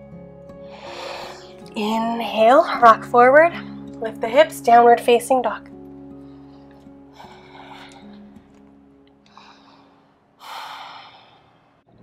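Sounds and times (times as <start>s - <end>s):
person exhaling heavily: 0.6s - 1.6s, 9.3s - 11.8s.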